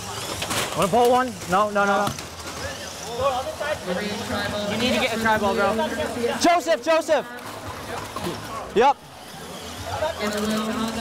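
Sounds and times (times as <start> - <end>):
crowd din: 0.0 - 11.0
people talking: 0.0 - 11.0.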